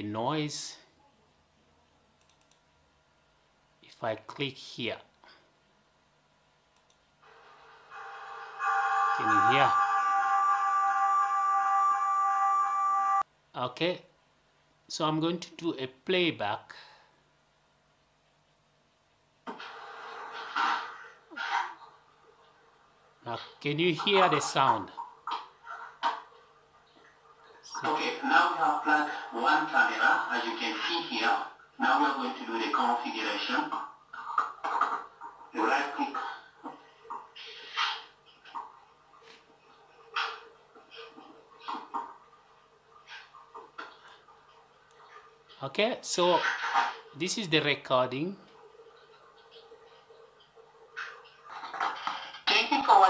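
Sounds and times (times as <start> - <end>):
noisy hiss: 0.0 - 25.0, 25.6 - 53.0.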